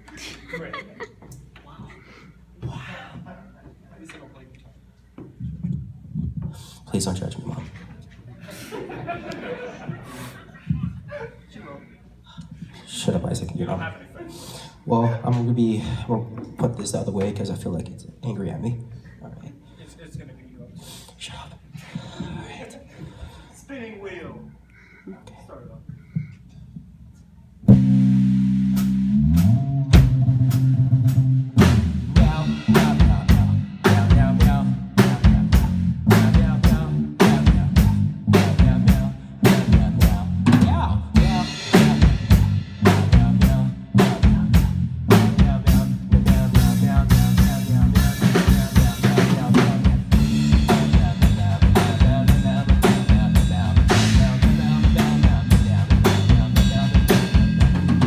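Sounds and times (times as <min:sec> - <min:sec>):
drum kit playing: 0:27.6 - 0:58.0
electric bass playing: 0:27.6 - 0:58.0.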